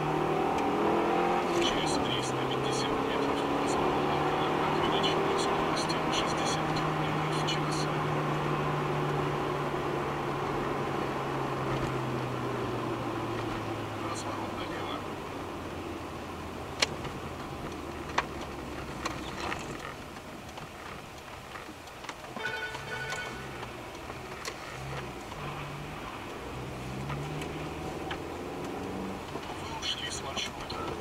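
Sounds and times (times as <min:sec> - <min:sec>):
engine and road hum: 0:00.0 - 0:31.0
high tones: 0:22.4 - 0:23.8.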